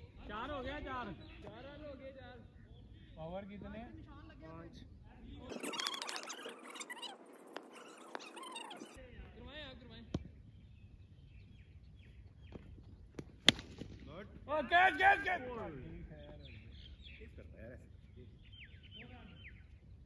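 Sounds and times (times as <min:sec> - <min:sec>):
bat striking ball: 0:13.1 - 0:14.1
distant men calling: 0:14.2 - 0:19.6.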